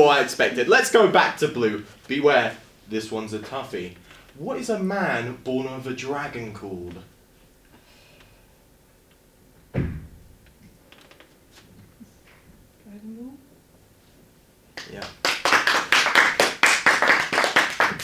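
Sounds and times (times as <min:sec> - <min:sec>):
people clapping: 0:14.8 - 0:18.0.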